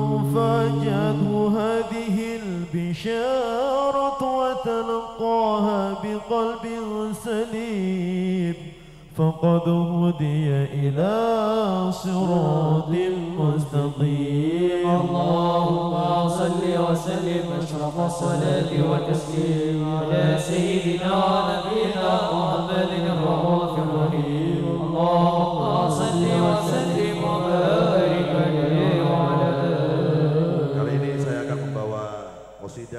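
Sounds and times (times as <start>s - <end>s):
men singing devotional song: 0.0s - 32.9s.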